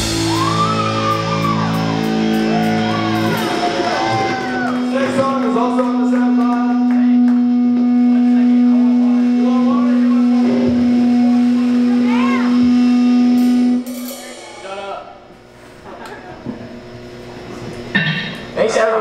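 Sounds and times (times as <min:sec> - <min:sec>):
electric guitar sustained note: 0:00.0 - 0:19.0
stage noise: 0:00.0 - 0:19.0.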